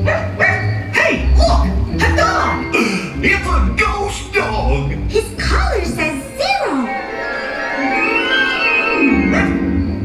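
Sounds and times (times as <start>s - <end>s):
small dog barking: 0.0s - 1.2s, 9.3s - 9.6s
orchestral music with heavy bass: 0.8s - 10.0s.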